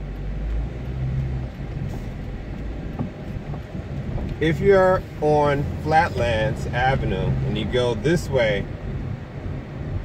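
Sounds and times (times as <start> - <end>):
low engine drone: 0.0 - 10.0
road noise: 0.0 - 10.0.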